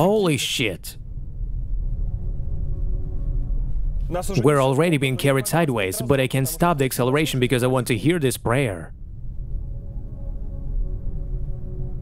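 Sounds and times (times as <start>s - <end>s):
strong low rumble: 0.7s - 12.0s.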